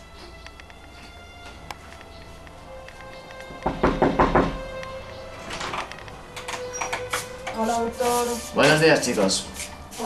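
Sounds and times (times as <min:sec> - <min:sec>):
quiet background music: 0:00.0 - 0:10.0
knocks on a door: 0:03.6 - 0:04.7.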